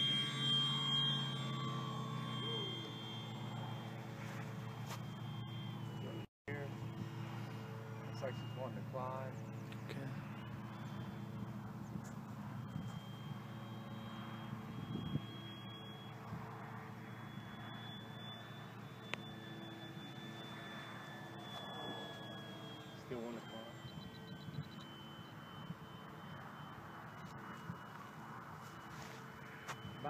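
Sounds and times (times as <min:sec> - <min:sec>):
model plane motor whine: 0:00.0 - 0:30.0.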